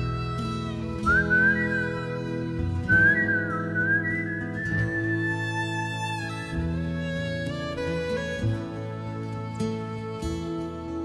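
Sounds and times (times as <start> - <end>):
strummed acoustic guitar: 0.0 - 11.0
whistled melody: 0.0 - 11.0.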